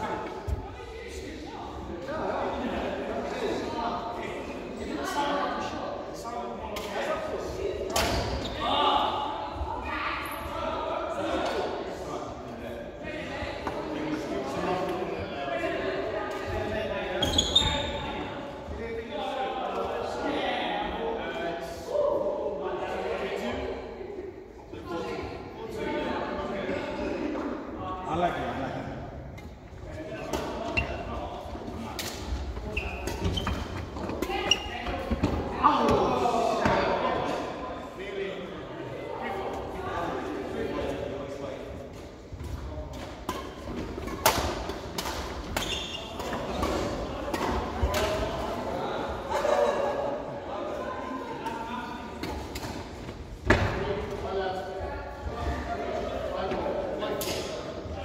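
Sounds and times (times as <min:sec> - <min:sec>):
shoe squeaks: 0:17.2 - 0:18.2, 0:32.6 - 0:33.8, 0:45.6 - 0:46.3.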